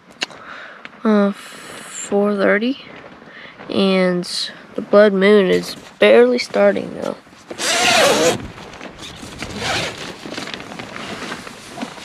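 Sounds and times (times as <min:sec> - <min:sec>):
rustling nylon and clothing: 0:05.4 - 0:12.0.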